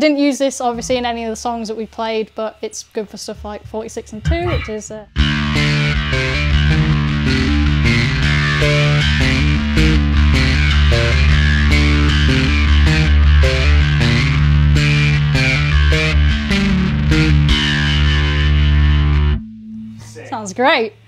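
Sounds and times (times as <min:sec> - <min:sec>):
electric bass with flanger: 0:04.3 - 0:20.2.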